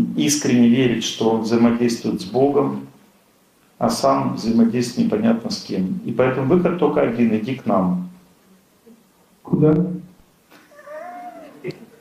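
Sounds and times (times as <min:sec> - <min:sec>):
faint high voice-like call: 0:10.7 - 0:11.8.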